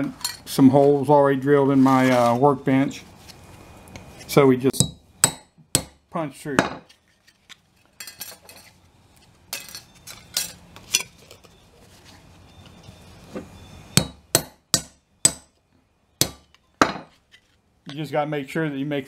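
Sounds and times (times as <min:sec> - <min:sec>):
hammer striking steel punch: 0:04.8 - 0:06.0, 0:14.0 - 0:15.5, 0:16.2 - 0:17.1.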